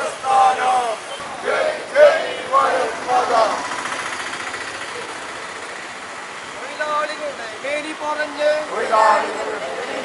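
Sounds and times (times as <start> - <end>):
voices calling out: 0.0 - 10.0
pulsing vehicle engine: 1.3 - 10.0.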